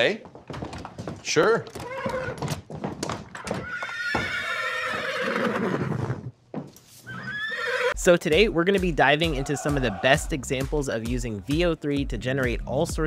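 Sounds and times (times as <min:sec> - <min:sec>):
hooves clopping on wooden floor: 0:00.0 - 0:05.0
horse whinny: 0:01.8 - 0:02.5, 0:03.4 - 0:06.4, 0:07.0 - 0:08.0.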